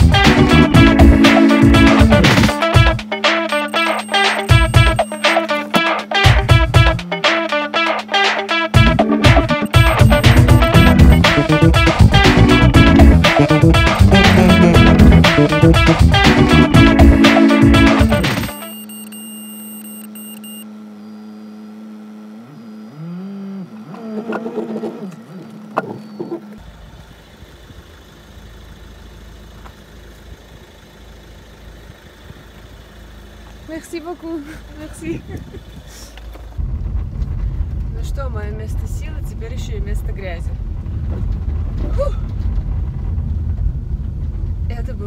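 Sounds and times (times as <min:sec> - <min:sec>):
engine idling low rumble: 0:00.0 - 0:03.2, 0:08.8 - 0:45.0
car engine high drone: 0:00.0 - 0:07.8, 0:08.5 - 0:38.0
woman exhaling: 0:41.8 - 0:42.3.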